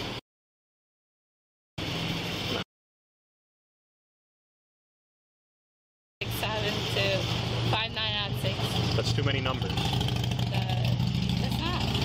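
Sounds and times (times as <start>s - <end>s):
vehicle engine idling: 7.4s - 12.0s.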